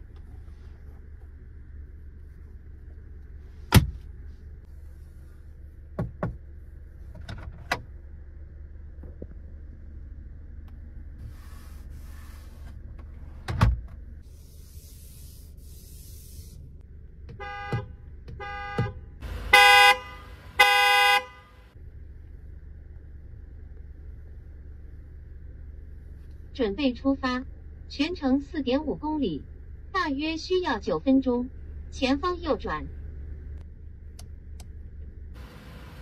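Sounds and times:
car horn honking: 0:17.3 - 0:21.7.

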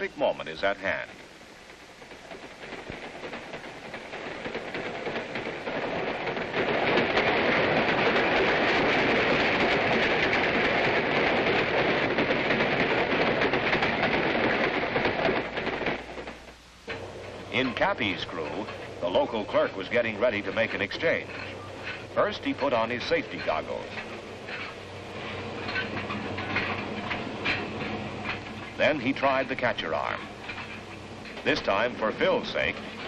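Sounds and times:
train passing at speed: 0:00.0 - 0:33.0
wheel-on-rail clatter: 0:00.0 - 0:33.0.

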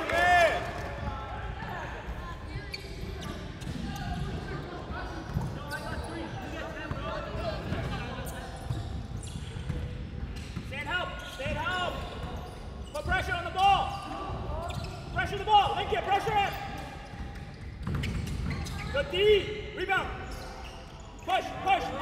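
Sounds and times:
players' voices: 0:00.0 - 0:22.0
sneaker squeaks: 0:01.6 - 0:22.0.

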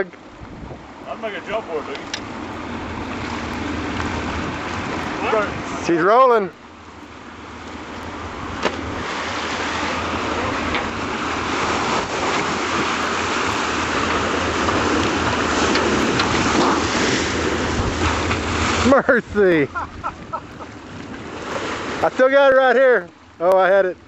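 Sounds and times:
water rushing and churning: 0:00.0 - 0:24.0.

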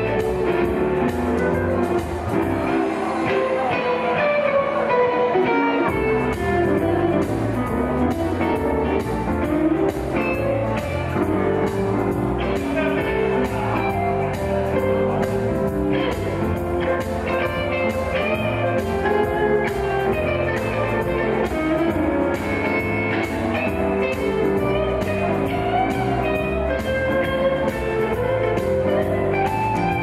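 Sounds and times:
steady drum beat: 0:00.0 - 0:03.2, 0:05.9 - 0:30.0
electric guitar: 0:00.0 - 0:30.0.

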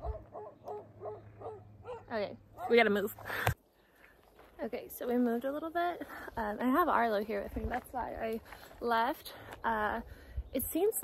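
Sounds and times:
faint dog barking: 0:00.0 - 0:02.8.

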